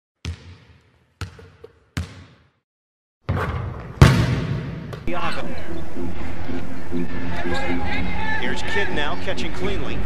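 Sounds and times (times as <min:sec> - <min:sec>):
basketball bouncing: 0:00.2 - 0:02.6, 0:03.2 - 0:05.1
arena crowd noise: 0:05.0 - 0:10.0.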